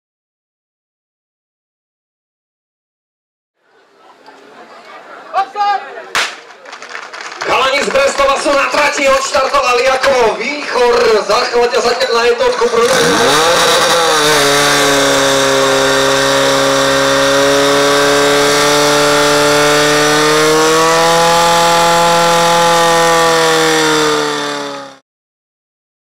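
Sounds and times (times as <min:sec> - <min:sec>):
pump engine running: 0:12.6 - 0:25.0.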